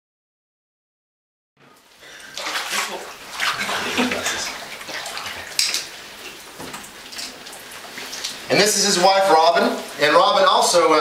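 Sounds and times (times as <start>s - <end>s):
water sloshing and splashing: 1.8s - 10.6s.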